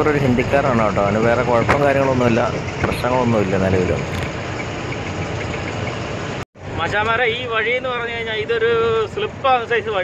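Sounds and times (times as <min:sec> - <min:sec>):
truck engine running: 0:00.0 - 0:07.1
road noise: 0:00.0 - 0:10.0.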